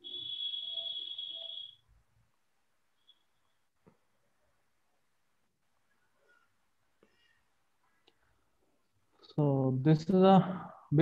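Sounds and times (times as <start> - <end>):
steady high-pitched tone: 0.0 - 1.9.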